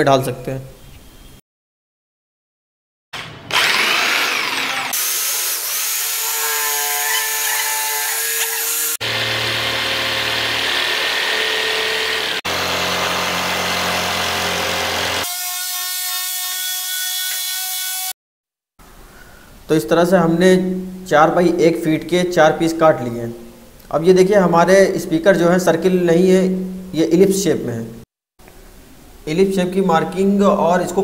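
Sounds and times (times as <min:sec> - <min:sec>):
jigsaw motor whine: 0:03.2 - 0:15.3
blade sawing through board: 0:03.2 - 0:18.1.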